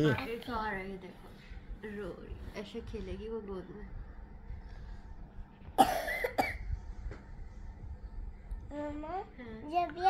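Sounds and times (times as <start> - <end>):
person coughing: 5.8 - 6.6.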